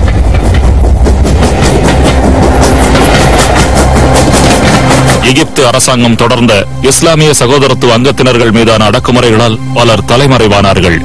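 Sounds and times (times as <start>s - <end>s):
heavy deep rumble: 0.0s - 6.8s.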